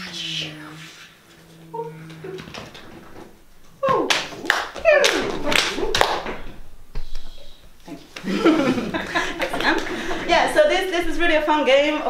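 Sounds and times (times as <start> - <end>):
sliding vocal noises: 0.2 - 3.0
sharp claps: 3.8 - 7.3.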